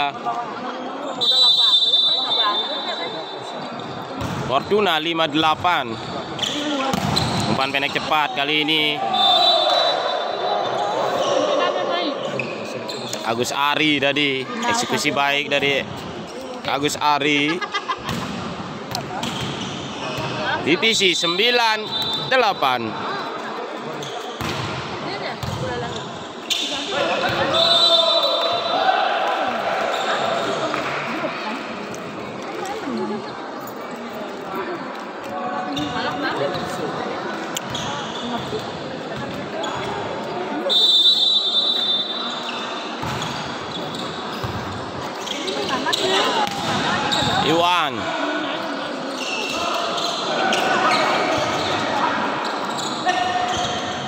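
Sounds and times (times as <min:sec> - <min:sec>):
people shouting and talking: 0:00.0 - 0:54.0
referee whistle blasts: 0:01.1 - 0:03.6, 0:09.1 - 0:10.4, 0:21.8 - 0:22.4, 0:27.4 - 0:28.8, 0:40.6 - 0:42.6.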